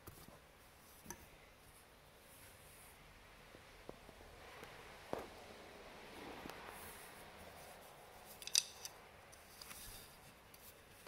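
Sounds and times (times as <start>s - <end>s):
yarn rustling on loom threads: 6.1s - 11.0s.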